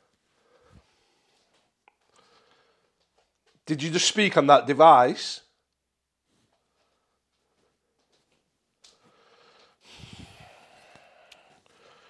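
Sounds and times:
man breathing out: 9.0s - 12.0s
man sniffing: 9.8s - 12.0s.

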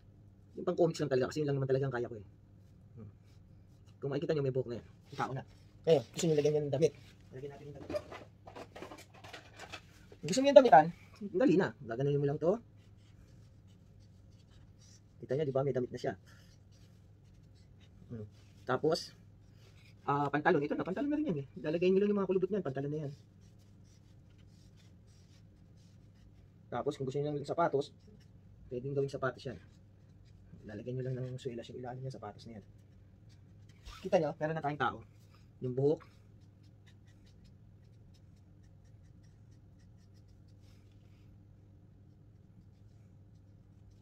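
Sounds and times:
marker scratching on paper: 5.1s - 6.9s, 12.8s - 28.4s, 29.0s - 34.6s, 35.2s - 40.9s, 42.0s - 44.0s.

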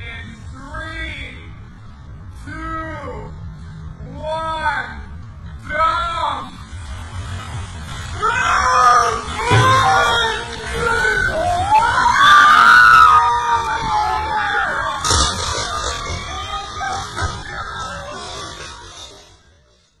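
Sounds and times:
slowed-down voices screaming: 7.8s - 19.8s.

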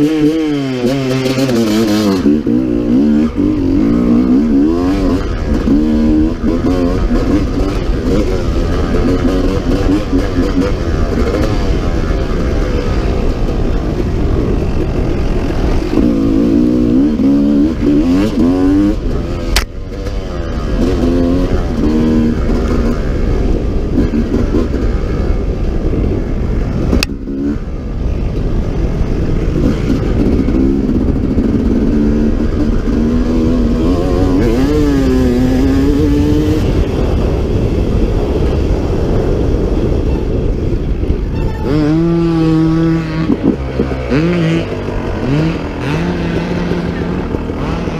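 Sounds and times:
motorcycle engine revving: 0.0s - 47.9s.

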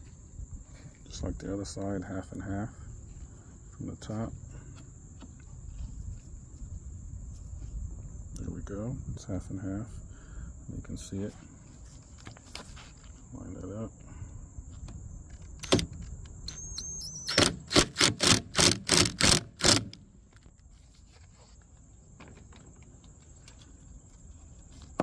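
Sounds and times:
driver short bursts: 16.5s - 20.0s.

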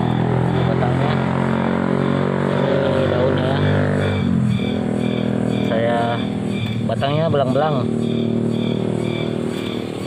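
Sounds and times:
motor engine running: 0.0s - 10.0s.

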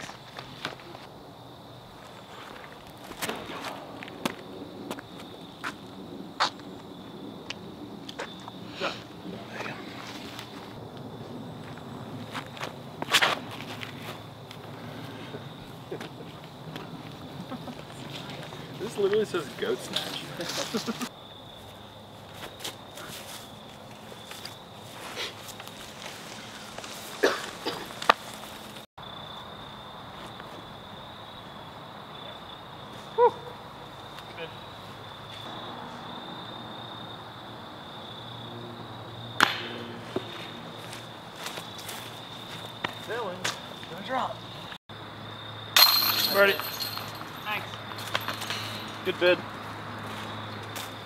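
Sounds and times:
discs clanking on chain basket: 45.8s - 49.0s.

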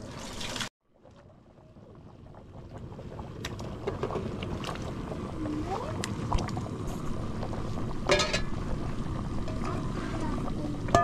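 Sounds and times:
low rumble: 4.3s - 11.0s.

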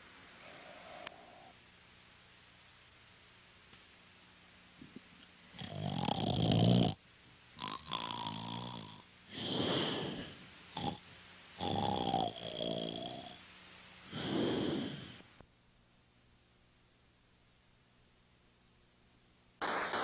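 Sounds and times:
raspy wheezing snorts: 5.5s - 7.0s, 7.6s - 11.0s, 11.6s - 13.4s, 14.1s - 15.2s.

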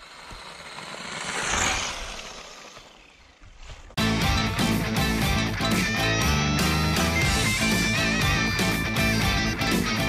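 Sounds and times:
rc car motor and tyres on snow: 0.0s - 4.4s.

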